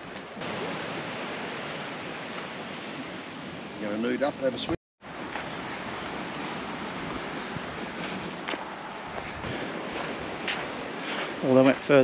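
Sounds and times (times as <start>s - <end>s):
distant surf: 0.0s - 12.0s
wind: 0.0s - 12.0s.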